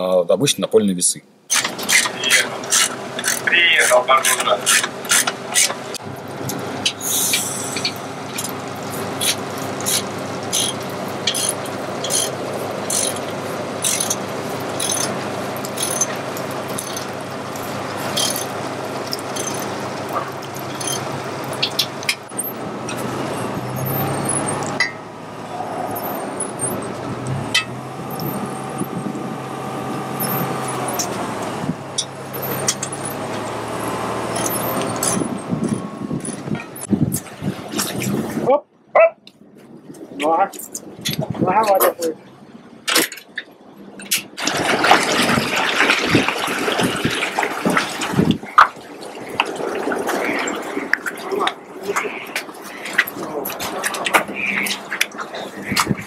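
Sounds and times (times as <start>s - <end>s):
crane engine running: 1.3s - 41.2s
hydraulic whine: 1.5s - 38.4s
rushing noise: 4.9s - 38.4s.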